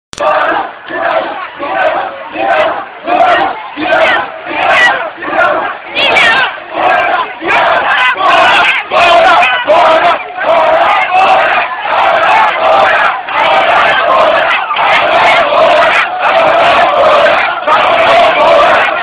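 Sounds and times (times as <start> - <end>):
crowd shouting a chant: 0.2 - 19.0.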